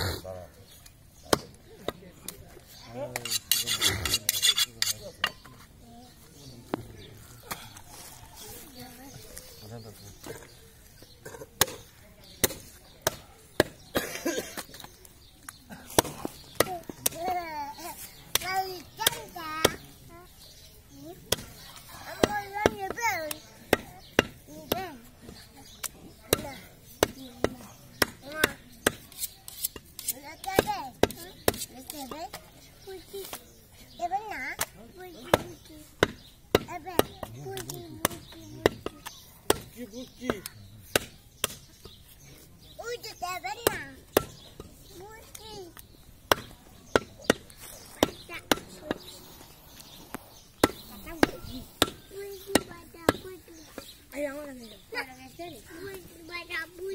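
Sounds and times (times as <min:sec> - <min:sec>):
cleaver chopping meat on wood: 0:11.6 - 0:13.8, 0:25.8 - 0:31.7, 0:35.3 - 0:42.0.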